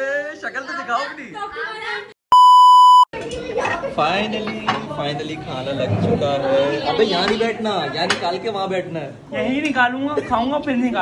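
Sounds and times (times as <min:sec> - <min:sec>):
high bleep tone: 0:02.3 - 0:03.1.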